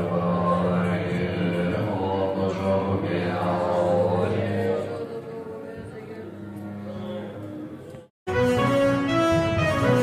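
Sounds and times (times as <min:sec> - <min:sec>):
monks chanting in low drone: 0:00.0 - 0:07.8.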